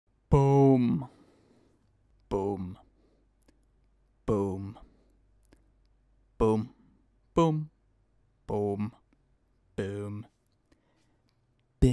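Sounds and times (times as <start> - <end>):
faint mouth click: 5.4 - 6.0.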